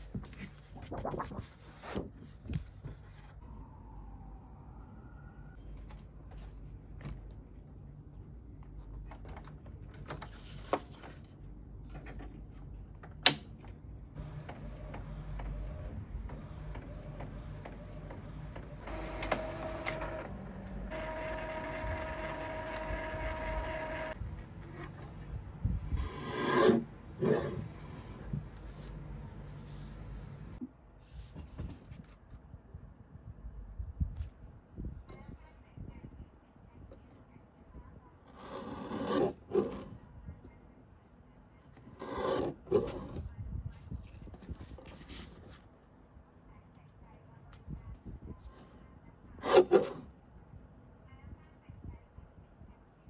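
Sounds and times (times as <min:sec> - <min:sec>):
paper swishing: 0:00.0 - 0:03.4
printer mechanism whirring: 0:14.2 - 0:24.2.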